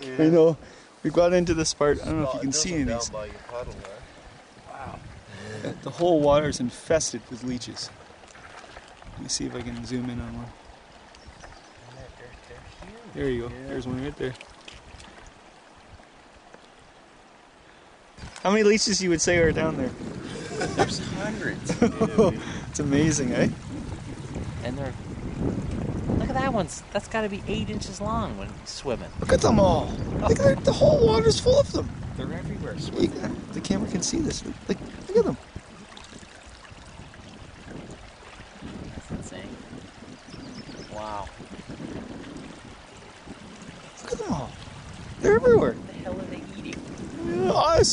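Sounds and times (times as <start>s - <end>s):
wind rumbling on microphone: 0.0s - 17.5s, 18.1s - 47.9s
lake water lapping: 0.0s - 47.9s.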